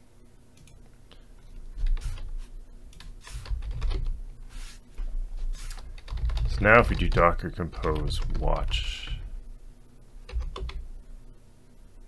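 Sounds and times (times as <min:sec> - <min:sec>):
typing on computer keyboard: 0:03.0 - 0:04.2, 0:05.7 - 0:09.2, 0:10.3 - 0:10.8.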